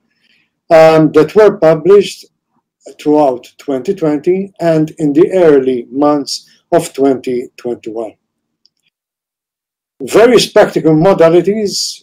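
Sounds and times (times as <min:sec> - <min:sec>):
man speaking: 0:00.7 - 0:08.2, 0:10.0 - 0:12.0.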